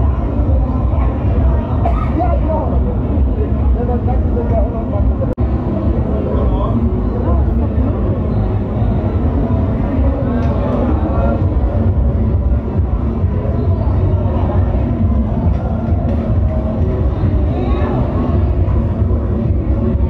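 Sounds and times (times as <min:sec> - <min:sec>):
indistinct voices: 0:00.0 - 0:20.0
steady low rumble: 0:00.0 - 0:20.0.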